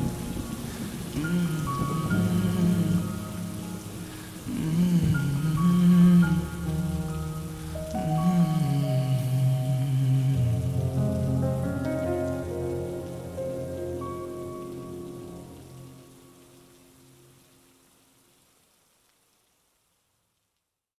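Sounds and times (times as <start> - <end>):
slow reverb-heavy lofi song: 0.0 - 17.4
falling rain hiss: 0.0 - 20.9.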